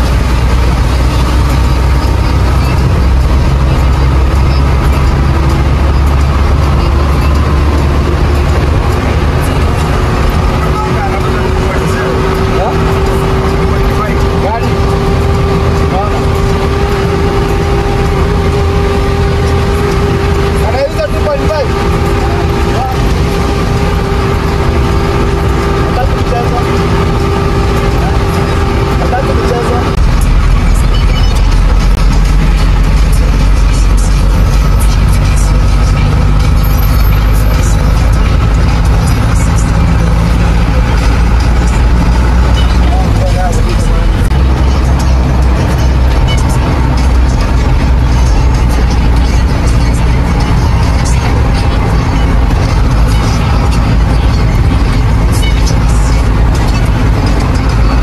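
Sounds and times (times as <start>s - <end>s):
deep rumble: 0.0s - 58.0s
engine hum: 0.0s - 58.0s
road and tyre rumble: 0.0s - 58.0s.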